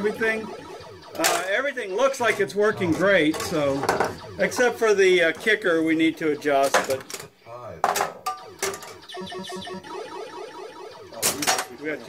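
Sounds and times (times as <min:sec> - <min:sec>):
repeating low synthesized notes: 0:00.0 - 0:07.0, 0:08.2 - 0:12.0
pinball machine electronic music: 0:00.0 - 0:07.1, 0:08.1 - 0:12.0.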